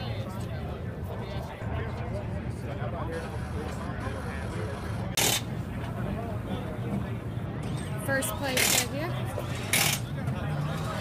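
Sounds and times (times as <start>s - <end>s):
people chattering: 0.0s - 11.0s.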